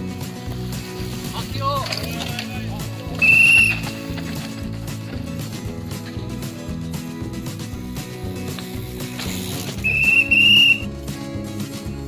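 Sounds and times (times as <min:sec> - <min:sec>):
background music: 0:00.0 - 0:12.0
high whistle blast: 0:09.8 - 0:10.8.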